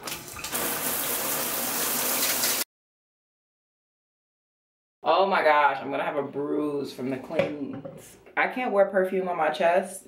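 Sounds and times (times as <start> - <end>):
showerhead spraying water: 0.3 - 2.6.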